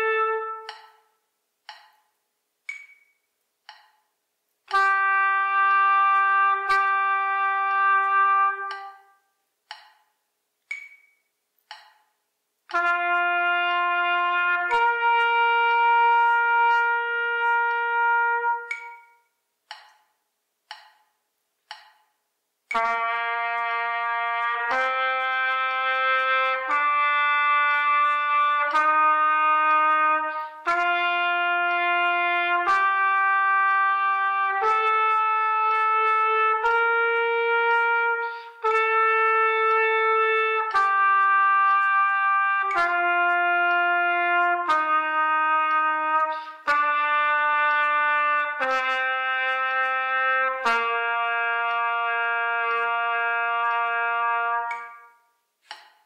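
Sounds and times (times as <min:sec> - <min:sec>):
trumpet playing long notes: 0:00.0 - 0:01.0, 0:04.7 - 0:09.2, 0:12.7 - 0:19.2, 0:22.7 - 0:55.2.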